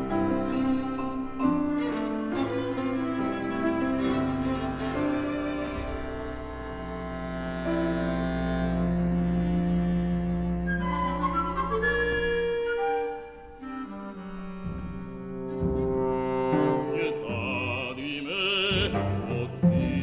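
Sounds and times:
orchestral music with held notes: 0.0 - 20.0.

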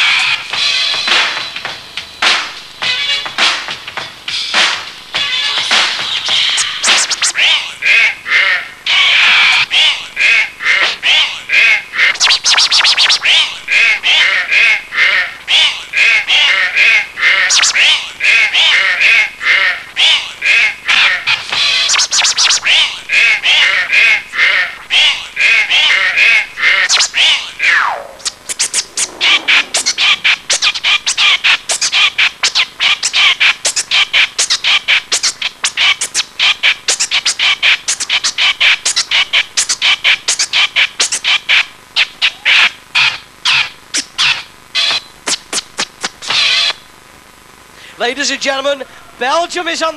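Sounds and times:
vinyl record scratching: 0.0 - 49.9
beat: 25.8 - 32.6.

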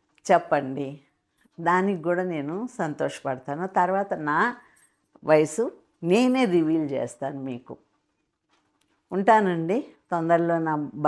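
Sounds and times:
woman speaking: 0.3 - 7.8, 9.1 - 11.0.

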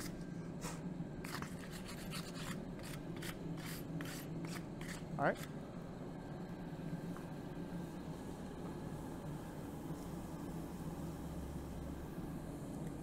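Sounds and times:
forge blower rushing hum: 0.0 - 13.0.

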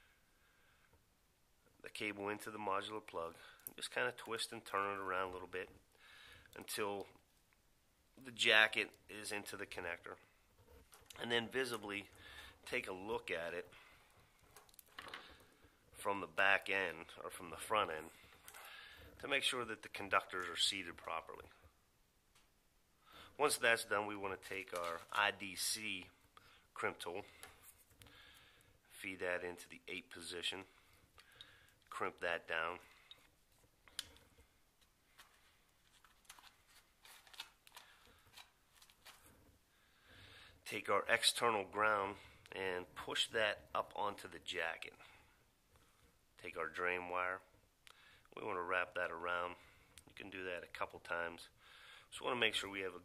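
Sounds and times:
cable and tools handled on table: 14.1 - 15.6, 24.5 - 25.2, 33.0 - 39.6.

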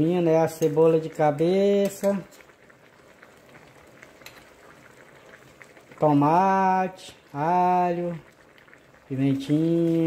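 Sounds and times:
meat sizzling and bubbling in a pan: 0.0 - 10.0.

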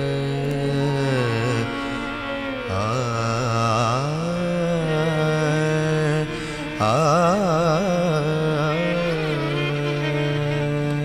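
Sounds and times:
devotional music with held note: 0.0 - 11.0.

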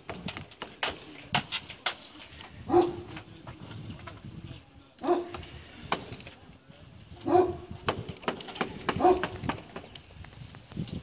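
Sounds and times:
dog barking: 2.7 - 3.0, 5.0 - 5.3, 7.2 - 7.6, 9.0 - 9.3.

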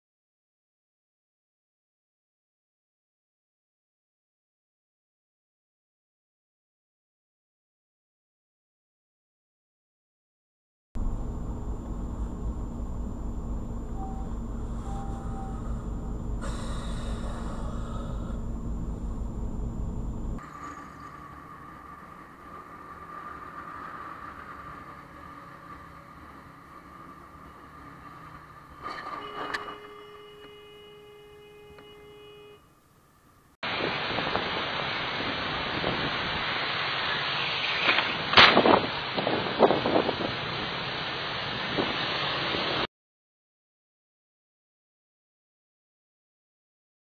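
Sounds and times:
steady ringing tone: 11.0 - 21.0
road and wind noise: 11.0 - 42.9.

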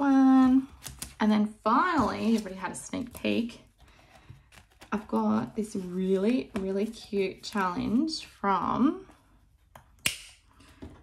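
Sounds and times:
hands handling plastic envelopes: 0.2 - 8.4.

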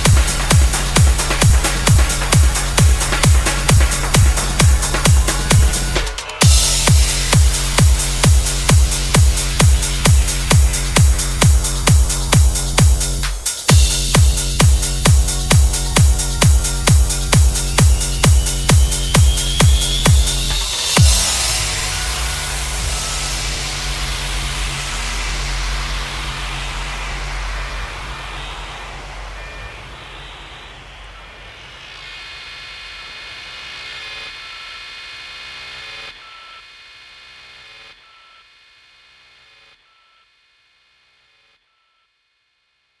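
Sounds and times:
held synth chord and bass: 0.0 - 32.0
trance music: 0.0 - 36.2
noise wash: 0.0 - 37.7
short high synth note: 13.7 - 32.0.

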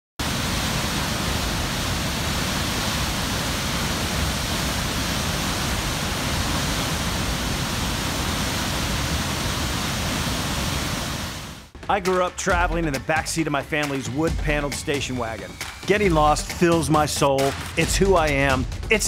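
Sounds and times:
waterfall rushing: 0.2 - 11.7.

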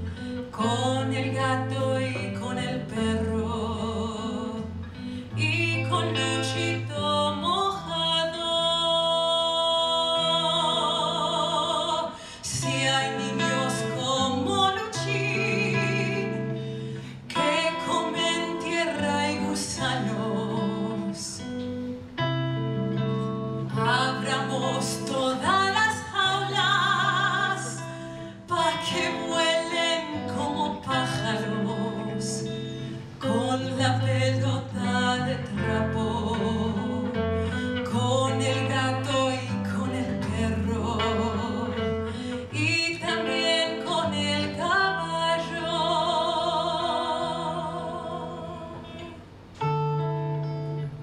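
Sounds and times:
woman singing with vibrato: 0.0 - 22.0, 23.6 - 49.5.

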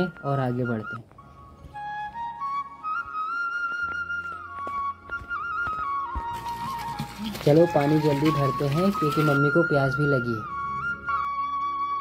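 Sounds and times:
solo flute melody: 0.0 - 7.2, 8.0 - 12.0.

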